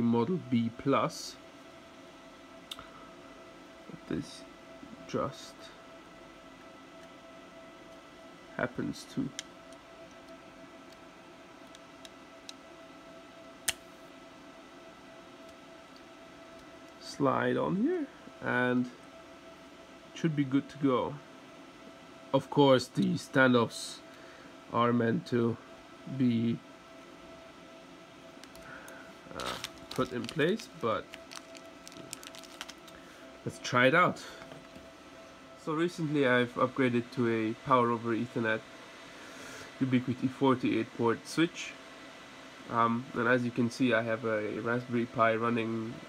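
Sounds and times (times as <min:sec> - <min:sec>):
faint steady hum: 0:00.0 - 0:46.0
circuit board handling clicks: 0:13.6 - 0:13.9
plastic bag rustling: 0:28.4 - 0:33.0.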